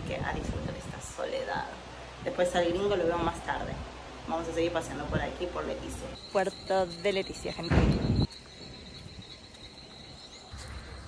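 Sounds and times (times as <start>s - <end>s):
insects droning: 6.0s - 11.0s
burst of microphone noise: 6.1s - 8.3s.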